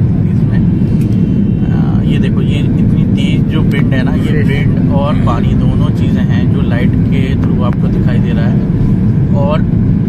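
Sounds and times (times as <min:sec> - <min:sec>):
jet engine and airflow rumble: 0:00.0 - 0:10.0
voices: 0:01.6 - 0:08.7.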